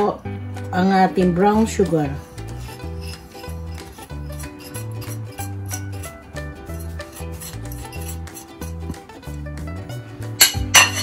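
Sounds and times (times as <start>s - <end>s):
background music with bass line: 0.0s - 11.0s
spatula scraping sugar from bowl: 1.6s - 8.9s.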